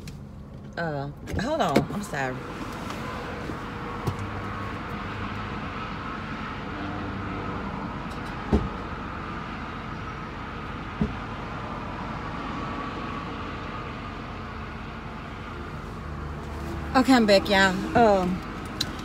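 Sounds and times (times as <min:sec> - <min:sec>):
traffic noise: 0:00.0 - 0:19.0.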